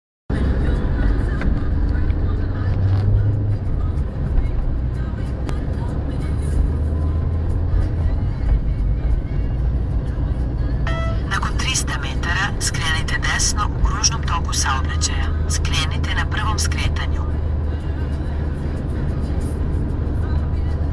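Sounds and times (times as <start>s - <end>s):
car driving rumble inside cabin: 0.3s - 20.9s
short beep: 10.8s - 11.5s
synthesized voice prompt: 10.8s - 17.2s.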